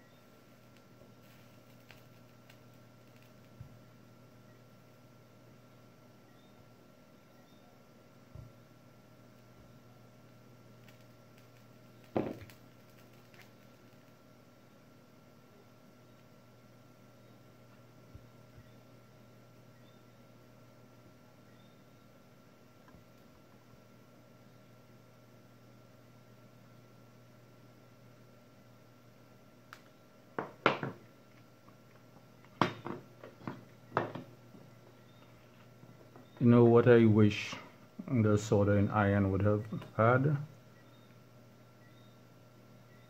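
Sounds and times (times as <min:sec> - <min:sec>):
faint steady hum: 0:00.0 - 0:43.0.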